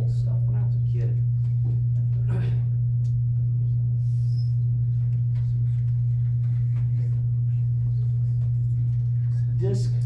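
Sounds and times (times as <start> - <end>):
faint room noises: 0.0 - 10.0
steady low hum: 0.0 - 10.0.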